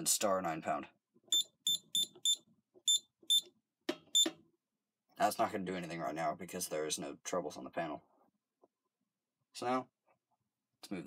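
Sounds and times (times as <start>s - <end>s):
keypad beeps: 1.3s - 3.5s.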